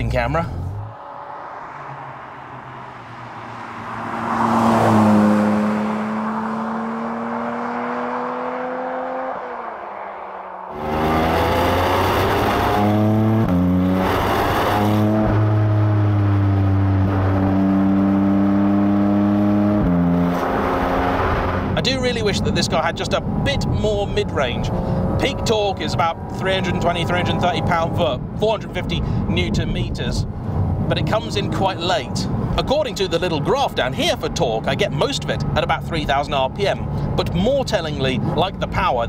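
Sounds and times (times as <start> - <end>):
car engine accelerating: 0.4 - 39.0
sports car passing by: 0.5 - 28.3.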